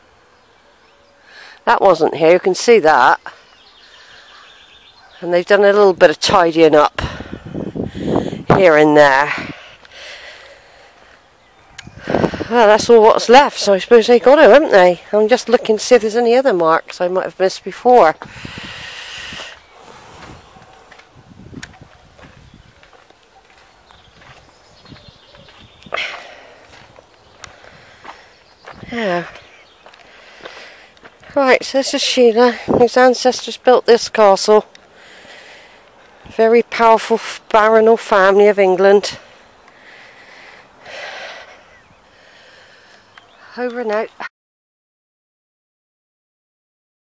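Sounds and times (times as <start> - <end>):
footsteps walking outdoors: 0.0 - 44.3
air rush across microphone: 6.9 - 9.6, 11.8 - 12.9, 18.2 - 22.7.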